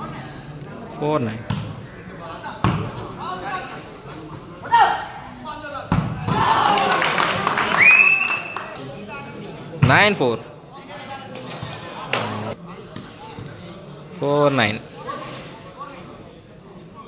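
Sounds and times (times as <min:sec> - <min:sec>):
crowd yelling and cheering: 0:06.3 - 0:08.8.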